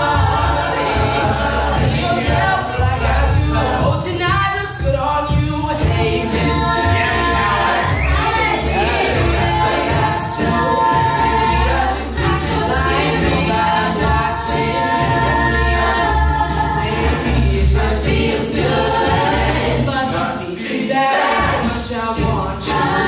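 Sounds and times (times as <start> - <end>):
backing vocal harmonies: 0.0 - 23.0
vocal percussion beat: 0.0 - 23.0.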